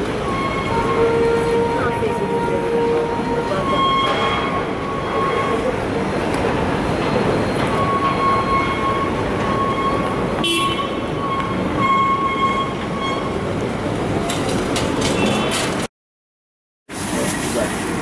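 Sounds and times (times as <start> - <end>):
city street traffic: 0.0 - 15.9, 16.9 - 18.0.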